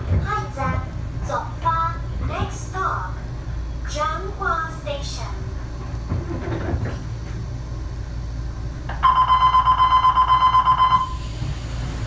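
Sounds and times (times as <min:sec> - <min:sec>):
low hum of standing train: 0:00.0 - 0:12.0
electric warning bell ringing: 0:09.0 - 0:11.2.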